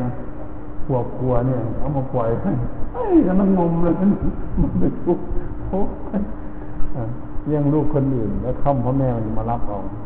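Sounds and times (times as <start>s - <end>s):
steady low hum: 0.0s - 10.0s
man speaking: 0.9s - 10.0s.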